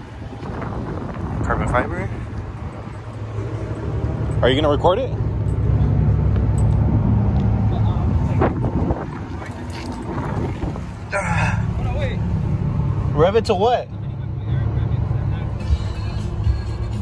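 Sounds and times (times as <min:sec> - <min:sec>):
car engine idling: 0:00.0 - 0:17.0.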